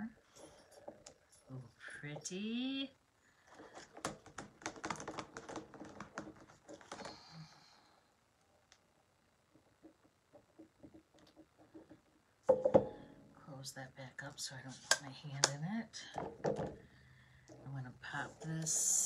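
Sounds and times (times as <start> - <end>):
plastic clatter: 3.5 - 7.2, 16.2 - 16.8.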